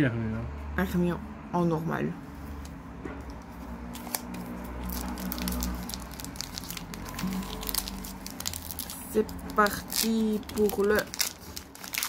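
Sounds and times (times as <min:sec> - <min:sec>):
low steady rumble: 0:00.8 - 0:12.0
foil wrapper crinkling: 0:03.9 - 0:12.0.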